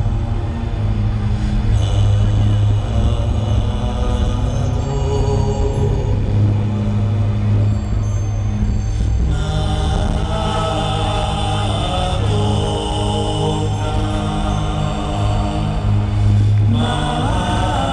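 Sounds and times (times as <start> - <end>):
deep slow chanting: 0.0 - 17.9
higher sustained tones: 0.0 - 17.9
sustained low drone: 0.0 - 17.9.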